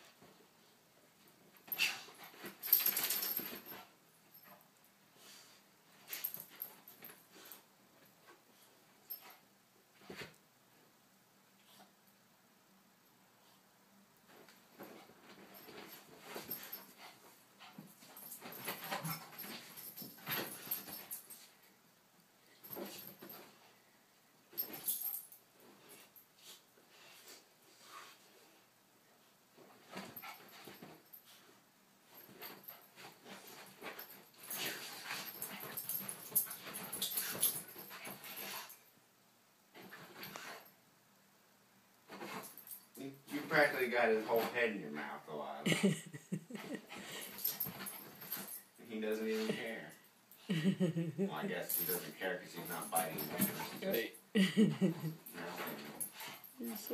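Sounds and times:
dogs play-fighting: 1.2 - 10.4, 14.3 - 21.6, 22.6 - 23.7, 24.5 - 28.6, 29.6 - 38.9, 39.7 - 40.8, 42.1 - 43.5, 46.4 - 51.0, 51.6 - 56.9.

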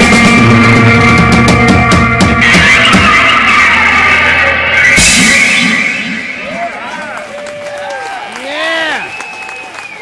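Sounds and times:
rock band playing: 0.0 - 7.9.

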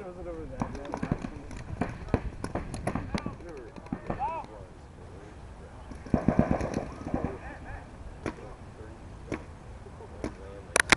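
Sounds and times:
paintball markers firing: 0.6 - 4.5, 6.0 - 7.4
distant shouting: 1.8 - 4.9.

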